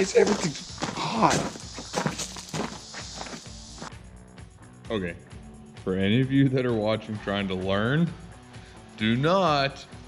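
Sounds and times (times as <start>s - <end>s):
footsteps crunching on gravel: 0.0s - 4.0s
background music: 0.0s - 10.0s.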